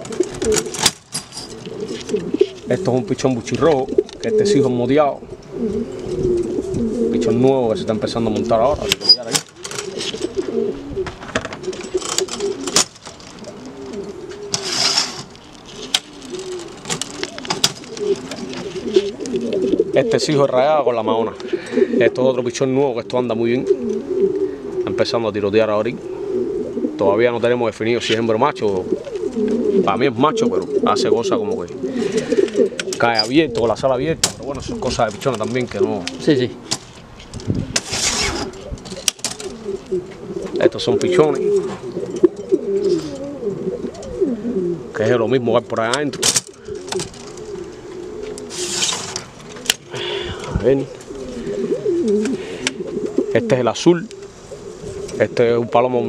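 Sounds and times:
pigeons cooing: 0.0 - 56.0
brief rustle: 36.7 - 39.6, 48.3 - 49.3.

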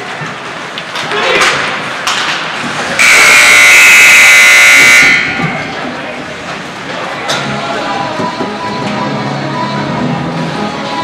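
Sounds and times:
electric buzzer steady tone: 3.0 - 5.4.

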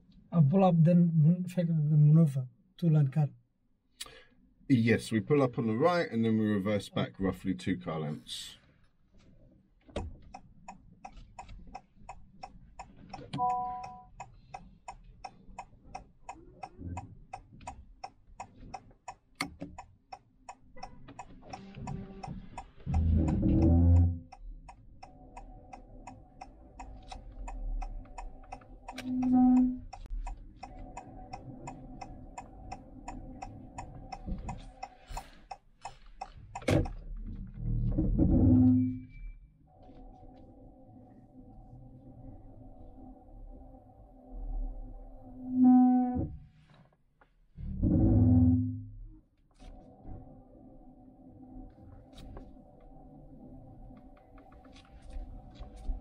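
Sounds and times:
turn signal ticking: 9.8 - 37.4
held tone: 28.9 - 29.9.

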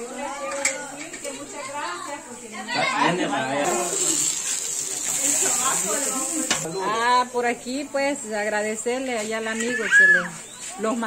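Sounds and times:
food sizzling on griddle: 3.3 - 6.7.

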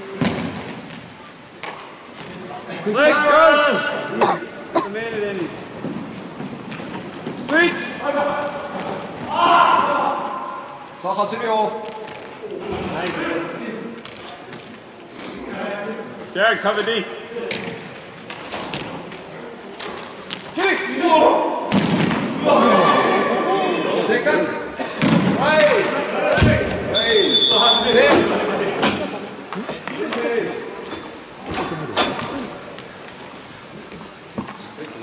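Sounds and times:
players shouting: 9.2 - 10.7, 22.3 - 24.6.

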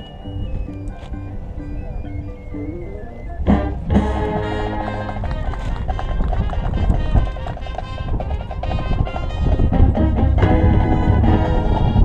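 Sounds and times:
marching band playing: 3.4 - 12.0.

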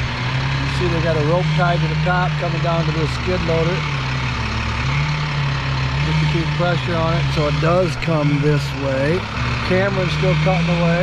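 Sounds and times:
engine idling: 0.0 - 11.0.

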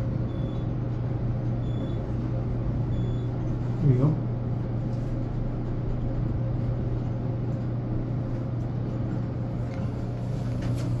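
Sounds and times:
elevator car low hum: 0.0 - 11.0.

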